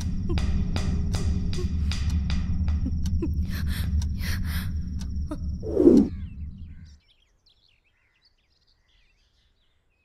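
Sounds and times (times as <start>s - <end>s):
low rumbling: 0.0s - 7.0s
faint bird chirps: 5.2s - 10.0s.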